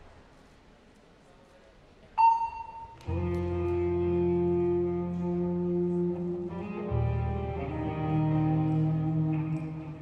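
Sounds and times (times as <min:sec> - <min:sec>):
faint arena room noise: 0:00.0 - 0:10.0
electronic beep: 0:02.2 - 0:03.0.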